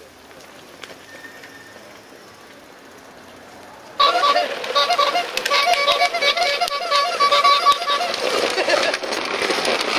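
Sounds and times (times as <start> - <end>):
faint outdoor background: 0.0 - 9.9
band music: 4.0 - 8.2.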